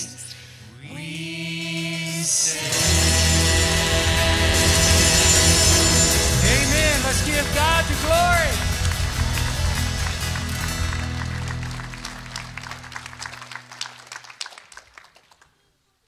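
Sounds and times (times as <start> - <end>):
people singing: 0.0 - 8.6
keyboard: 0.0 - 13.2
guitars: 0.0 - 13.6
worship band playing: 0.0 - 13.9
drums: 1.0 - 12.8.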